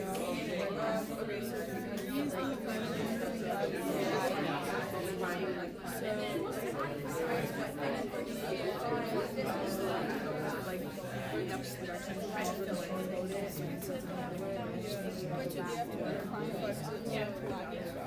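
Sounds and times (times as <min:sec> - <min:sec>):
babble of many voices: 0:00.0 - 0:18.0.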